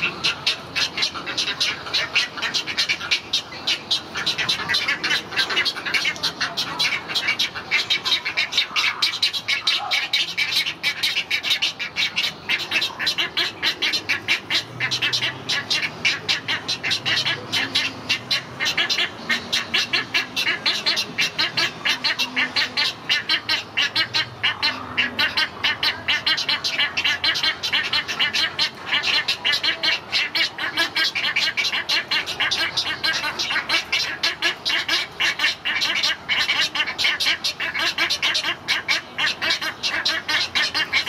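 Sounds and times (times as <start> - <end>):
egret chicks ticking calls: 0.0 - 41.0.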